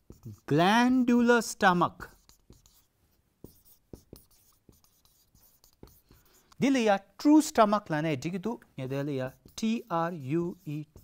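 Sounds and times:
marker writing on whiteboard: 0.0s - 7.5s, 8.5s - 11.0s.

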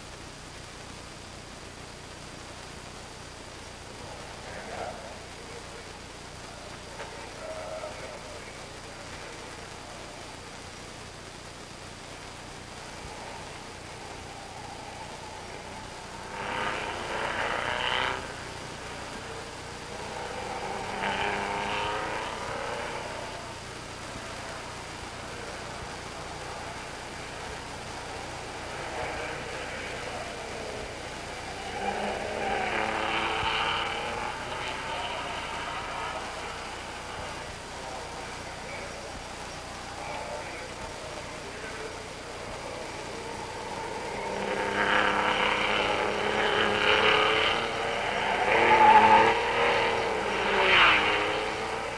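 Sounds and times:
film soundtrack hiss and hum: 0.0s - 51.9s
racing car engines passing: 3.7s - 51.9s.

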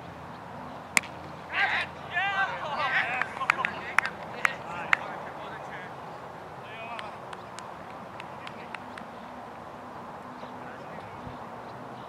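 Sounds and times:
cricket ball crack: 0.9s - 1.4s, 3.0s - 5.2s, 6.9s - 9.2s
person shouting appeal: 1.5s - 4.9s.

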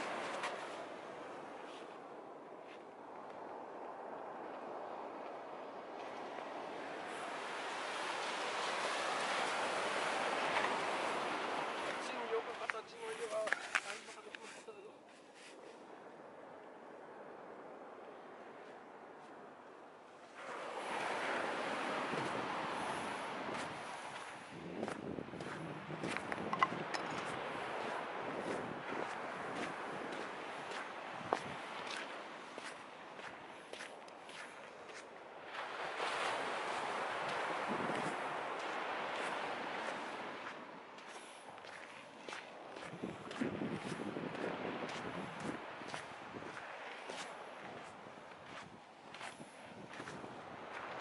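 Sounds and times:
surf washing on sandy shore: 0.0s - 51.0s
wind on microphone: 15.2s - 51.0s.

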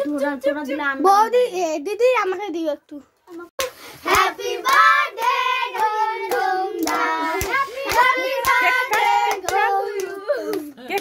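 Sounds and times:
rhythmic hand clapping: 3.6s - 11.0s
group singing: 4.0s - 10.6s.

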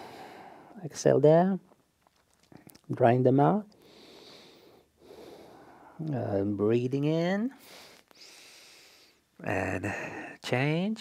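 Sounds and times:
person breathing: 0.0s - 0.8s, 3.8s - 6.0s, 7.6s - 10.4s.

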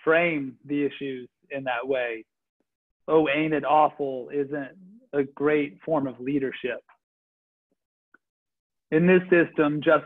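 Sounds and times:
man speaking: 0.0s - 2.3s, 3.1s - 7.0s, 8.9s - 10.0s.

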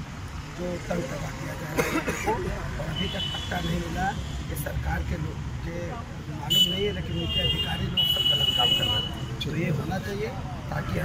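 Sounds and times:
man talking: 0.6s - 11.0s.

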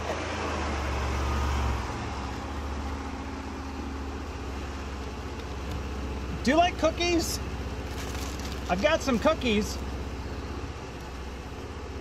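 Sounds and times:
car engine rumble inside cabin: 0.0s - 12.0s.

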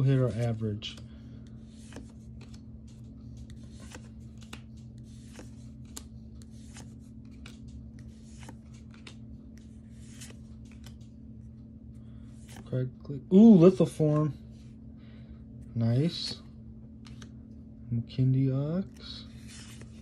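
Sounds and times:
steady low hum: 0.0s - 20.0s
cards being flipped: 0.3s - 12.7s, 16.1s - 17.5s, 18.8s - 20.0s.

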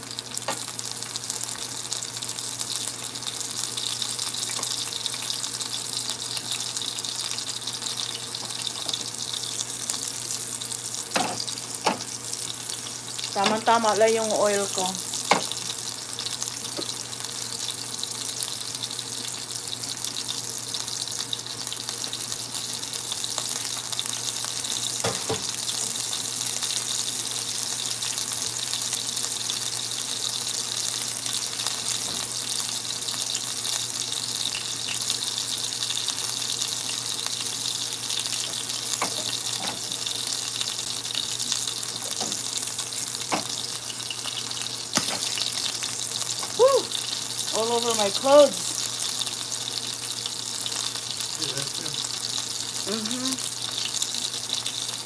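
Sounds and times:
calamari frying in oil: 0.0s - 55.0s.

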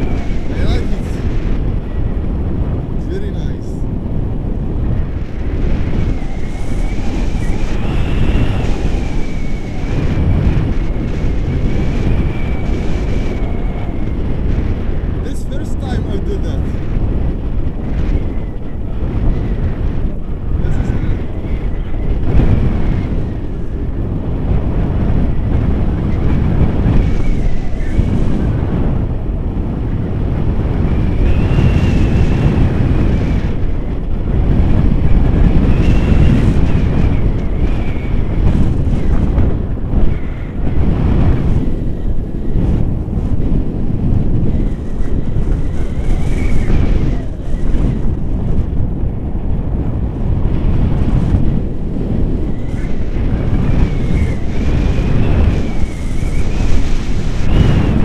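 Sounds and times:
wind buffeting microphone: 0.0s - 58.0s
thin high whistle: 6.1s - 9.9s, 35.7s - 36.6s.

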